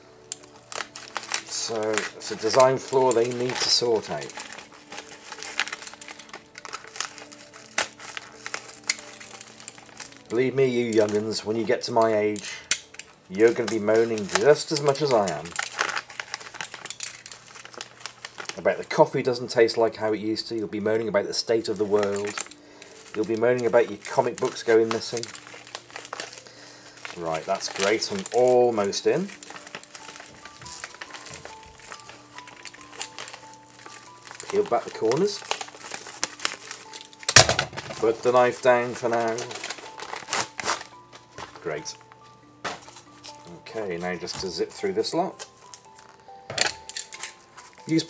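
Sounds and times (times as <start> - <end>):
tape crackling snaps: 0.0 - 19.1, 21.5 - 48.0
packaging crinkling and clicking: 0.0 - 19.8, 21.4 - 48.0
soft music with held notes: 0.0 - 48.0.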